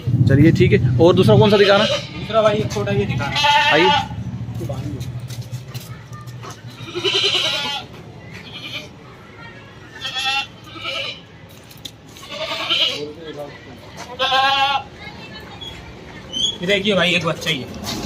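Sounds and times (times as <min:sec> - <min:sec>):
goat bleating: 0:01.4 - 0:04.2, 0:06.7 - 0:09.0, 0:09.9 - 0:11.3, 0:12.1 - 0:13.2, 0:14.0 - 0:14.9.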